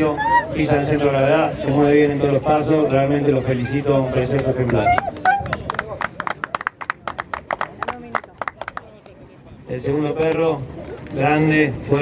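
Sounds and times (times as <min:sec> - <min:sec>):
scattered hand clapping: 0:04.2 - 0:09.2.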